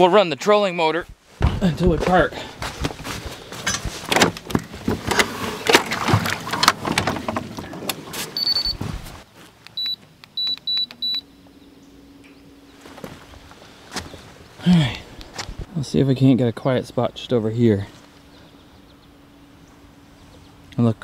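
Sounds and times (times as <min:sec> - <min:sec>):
short high beeps: 0:08.4 - 0:08.8, 0:09.8 - 0:11.3
handling noise: 0:12.7 - 0:14.6.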